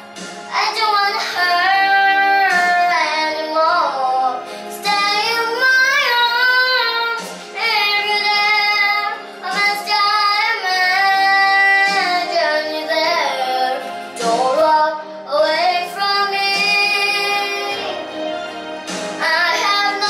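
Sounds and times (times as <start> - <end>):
girl singing a ballad: 0.0 - 20.0.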